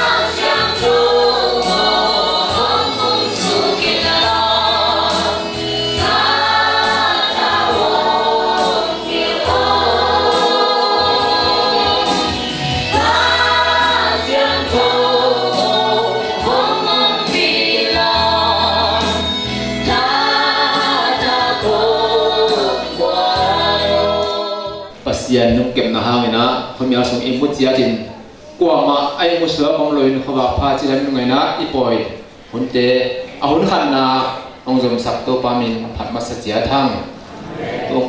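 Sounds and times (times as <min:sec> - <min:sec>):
choir singing a gospel hymn: 0:00.0 - 0:27.3, 0:33.6 - 0:38.0.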